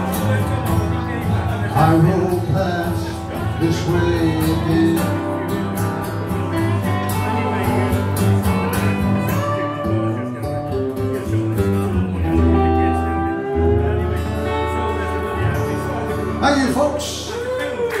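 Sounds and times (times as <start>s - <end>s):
slide resonator guitar: 0.0s - 17.8s
strummed acoustic guitar: 0.0s - 17.8s.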